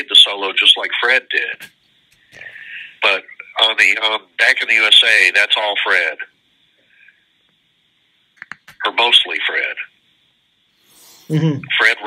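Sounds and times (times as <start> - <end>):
man talking over video call: 2.4 - 6.3, 8.8 - 9.9, 11.3 - 12.0.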